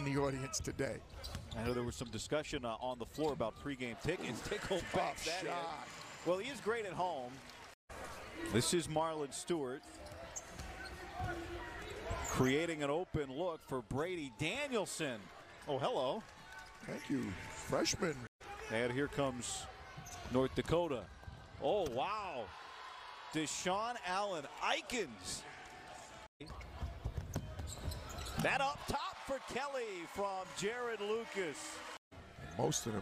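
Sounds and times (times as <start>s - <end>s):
arena noise: 3.5s - 32.0s
sharp squeaks: 27.3s - 28.5s.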